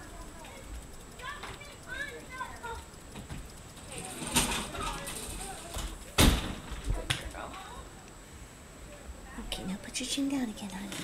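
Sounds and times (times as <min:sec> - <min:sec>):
faint voices: 0:00.0 - 0:11.0
sharp knock: 0:06.2 - 0:06.6.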